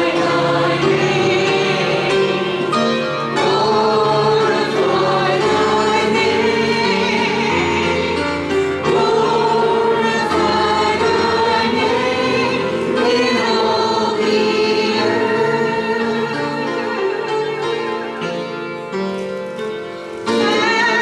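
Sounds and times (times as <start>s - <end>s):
congregation singing a hymn: 0.0s - 18.5s, 20.2s - 21.0s
woman singing into microphone: 20.3s - 21.0s.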